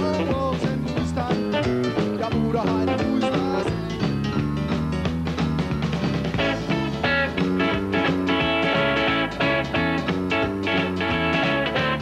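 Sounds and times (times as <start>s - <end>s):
drums and bass beat: 0.0s - 12.0s
electric guitar with bent notes: 0.0s - 12.0s.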